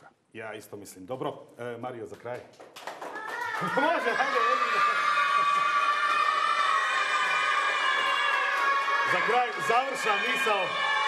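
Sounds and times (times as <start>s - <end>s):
boys cheering: 3.1s - 11.0s.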